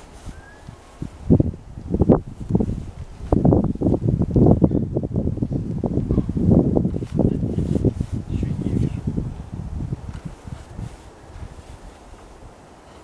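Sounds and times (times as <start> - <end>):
parka rustling: 0.0 - 13.0.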